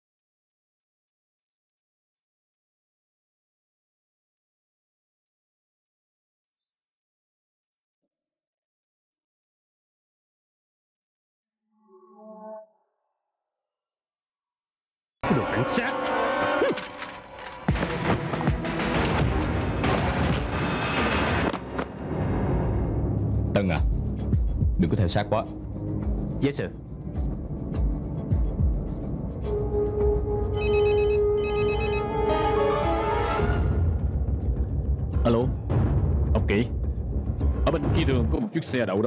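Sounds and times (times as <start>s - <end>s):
dramatic soundtrack music: 15.2s - 39.0s
mobile phone trilling ring: 30.6s - 32.2s.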